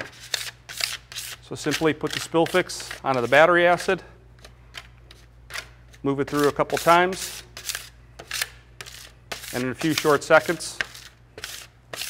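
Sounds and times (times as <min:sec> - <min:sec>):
plastic scraper scraping metal pan: 0:08.8 - 0:12.0.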